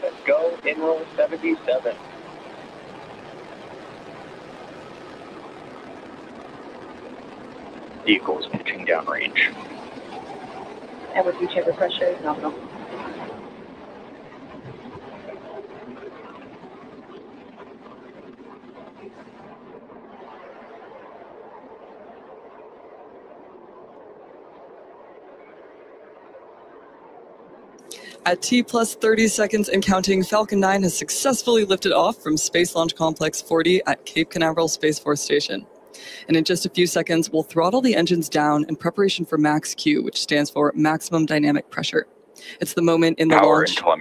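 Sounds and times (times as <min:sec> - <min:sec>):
rocket engines roaring: 0:00.0 - 0:44.0.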